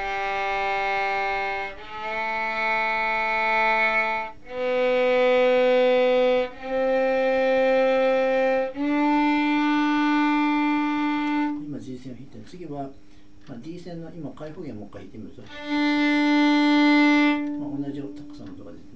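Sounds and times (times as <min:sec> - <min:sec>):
violin bowing long notes: 0:00.0 - 0:11.8, 0:15.4 - 0:18.9.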